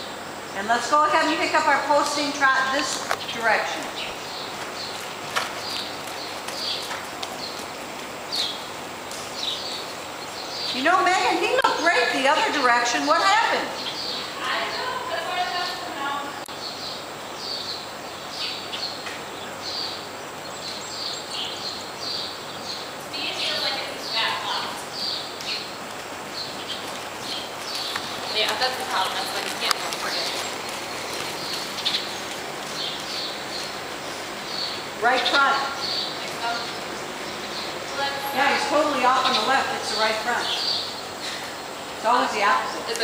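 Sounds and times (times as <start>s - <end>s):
background hiss: 0.0s - 43.0s
small birds chirping: 0.0s - 43.0s
horse trotting on dirt: 1.9s - 11.3s, 23.3s - 34.7s.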